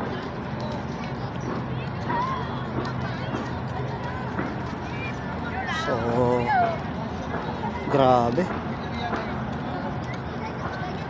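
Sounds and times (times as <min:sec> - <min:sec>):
scattered crowd voices: 0:00.0 - 0:11.0.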